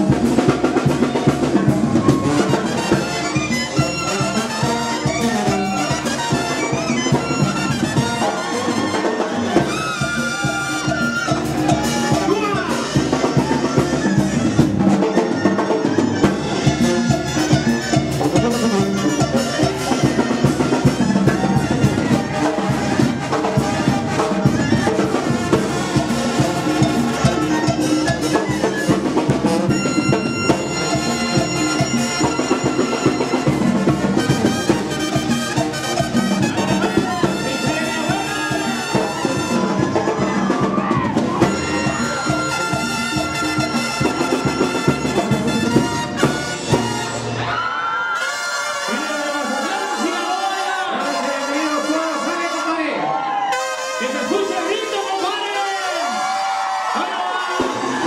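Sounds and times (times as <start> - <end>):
brass band with drums: 0.0 - 58.0.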